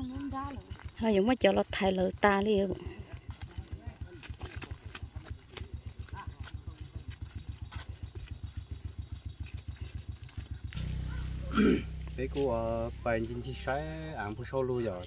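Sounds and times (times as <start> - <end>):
small engine puttering: 0.0 - 15.0
steady low hum: 0.0 - 15.0.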